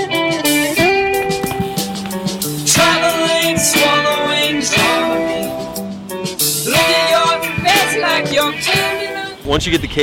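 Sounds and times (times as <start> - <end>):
guitar-led background music: 0.0 - 10.0.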